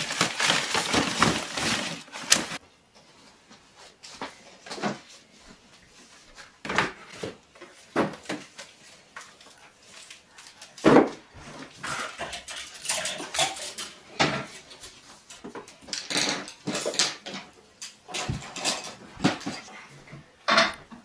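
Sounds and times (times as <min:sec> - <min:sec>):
books knocking and rustling: 0:00.0 - 0:02.6, 0:06.6 - 0:09.1, 0:10.8 - 0:11.8.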